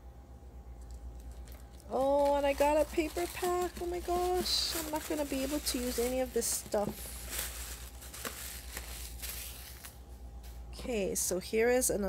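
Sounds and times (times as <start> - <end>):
packaging rustling and crinkling: 1.1 - 10.6.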